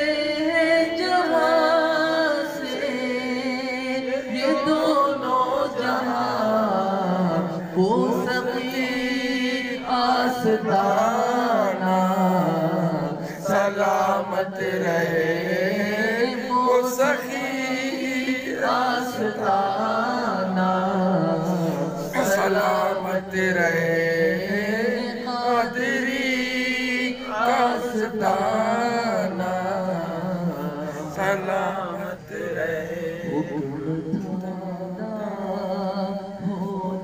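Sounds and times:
man singing devotional chant: 0.0 - 37.0
breaths: 21.5 - 22.0.

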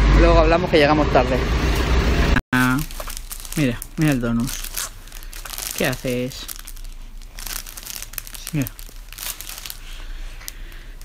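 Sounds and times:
plastic bag crinkling: 2.6 - 11.0.

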